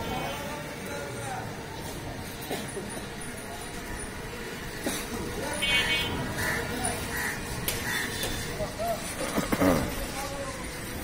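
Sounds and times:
traffic: 0:00.0 - 0:11.0
vehicle horn toot: 0:05.6 - 0:06.2.

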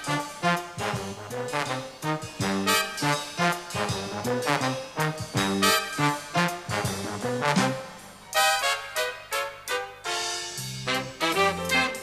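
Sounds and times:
brass section playing swing: 0:00.0 - 0:12.0.

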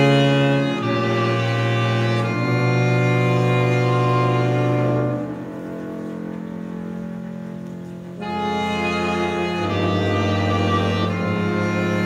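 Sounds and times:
chamber orchestra sustained chords: 0:00.0 - 0:12.0.

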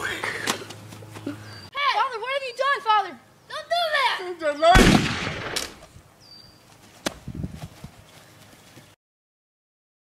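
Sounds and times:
gunshot: 0:04.8 - 0:05.8.

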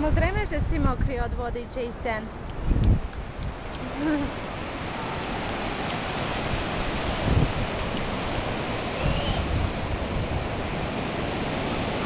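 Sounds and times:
surf breaking on beach: 0:03.2 - 0:12.0.

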